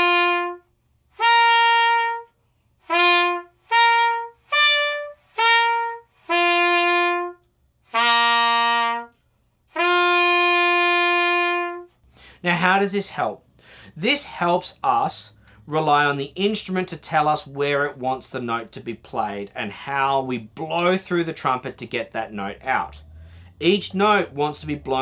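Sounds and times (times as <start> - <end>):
trumpet playing lip slurs: 0.0 - 12.0.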